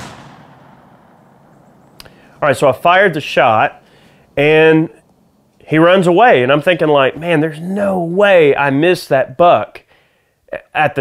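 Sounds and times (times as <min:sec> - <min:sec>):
rifle shot echo: 0:00.0 - 0:01.9
open-air background: 0:00.0 - 0:11.0.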